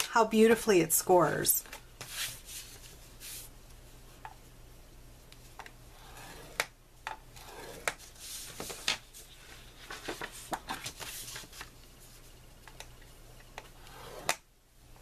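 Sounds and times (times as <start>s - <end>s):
paper sliding over board: 6.0s - 6.7s, 7.4s - 11.6s.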